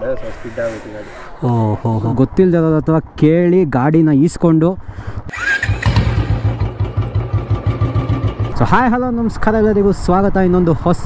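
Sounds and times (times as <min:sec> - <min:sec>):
motorcycle engine idling: 0:05.4 - 0:09.1.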